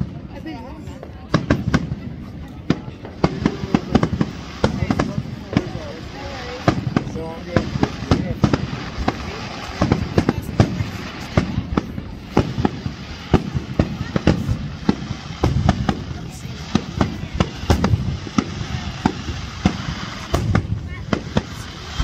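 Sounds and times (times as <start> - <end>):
fireworks bangs and cracks: 0.0 - 22.0.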